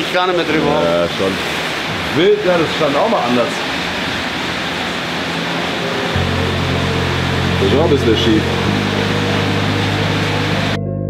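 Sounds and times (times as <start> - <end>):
steady outdoor noise: 0.0 - 10.8
background music low notes: 2.0 - 11.0.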